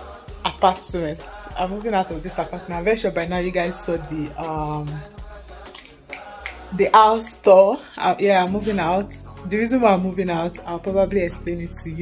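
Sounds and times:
finger snaps: 5.6 - 6.8.

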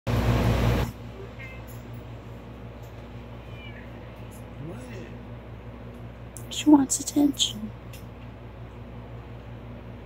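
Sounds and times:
steady low hum: 0.1 - 10.0
cat meowing: 1.2 - 1.8, 3.3 - 4.4.

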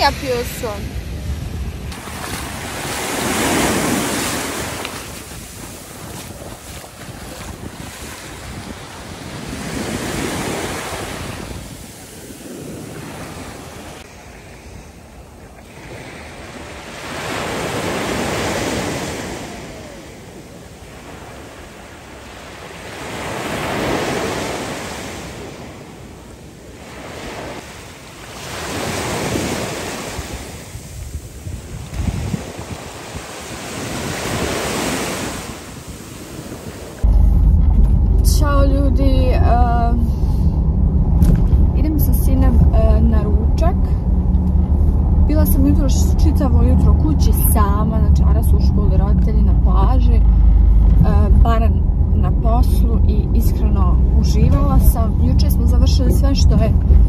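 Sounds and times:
waves washing up a beach: 0.0 - 37.1.

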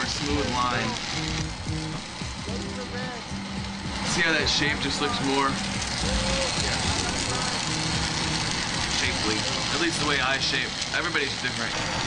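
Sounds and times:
torch flame hissing: 0.0 - 12.0.

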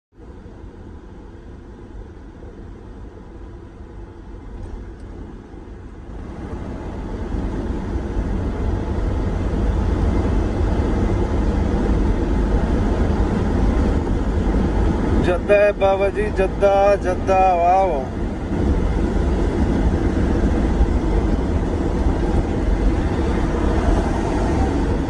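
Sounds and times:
vehicle engine and road rumble: 0.1 - 25.0.

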